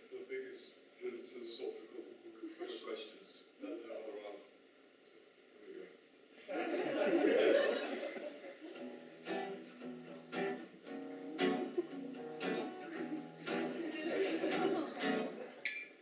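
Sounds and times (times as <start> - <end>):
audience laughter: 6.4 - 8.8, 11.3 - 15.6
acoustic guitars strumming: 8.7 - 15.7.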